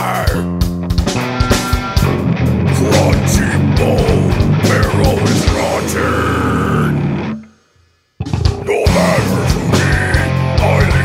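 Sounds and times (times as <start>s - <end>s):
death metal band playing: 0.0s - 7.5s, 8.2s - 11.0s.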